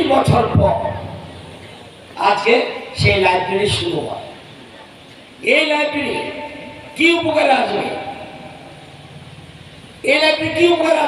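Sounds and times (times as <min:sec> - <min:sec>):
outdoor background hiss: 0:00.0 - 0:11.0
public address voice echo: 0:00.0 - 0:11.0
low engine rumble: 0:06.6 - 0:10.9.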